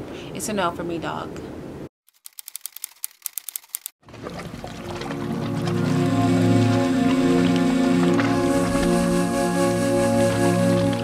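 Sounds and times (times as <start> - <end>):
typing clicks: 2.2 - 3.9
music with sustained chords: 4.8 - 11.0.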